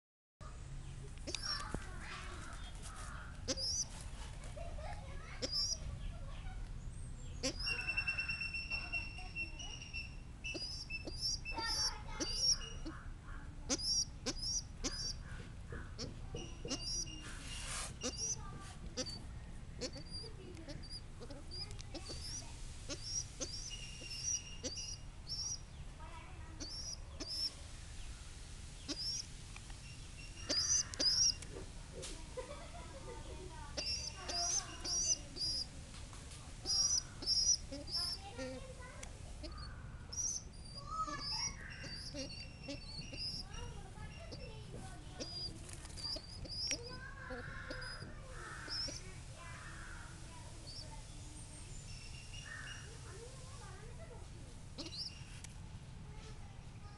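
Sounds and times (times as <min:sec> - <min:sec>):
young pigeons peeping: 0:00.6 - 0:55.5
high quick chirps: 0:03.5 - 0:03.9, 0:05.4 - 0:05.9, 0:07.4 - 0:12.9, 0:13.7 - 0:15.2, 0:16.4 - 0:25.9, 0:26.6 - 0:31.5, 0:33.5 - 0:35.8, 0:36.6 - 0:53.3, 0:54.7 - 0:55.5
rustling bursts: 0:16.8 - 0:19.3.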